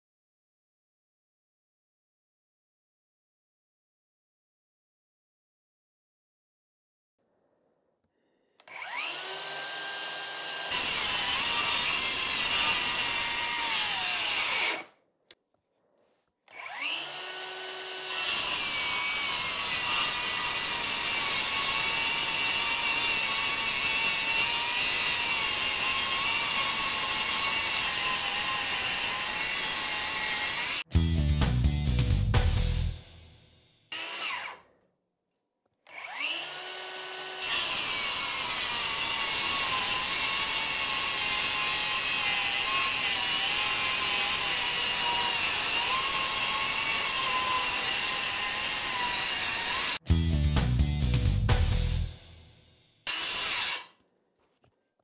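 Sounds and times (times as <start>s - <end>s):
circular saw cutting wood: 8.6s - 14.9s, 16.5s - 30.9s, 33.8s - 34.7s, 35.9s - 50.0s, 53.0s - 54.0s.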